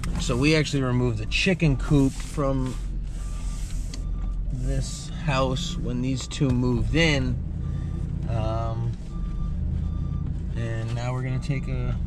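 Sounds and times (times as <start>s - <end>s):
truck engine running: 0.0s - 12.0s
reversing beeper: 0.2s - 12.0s.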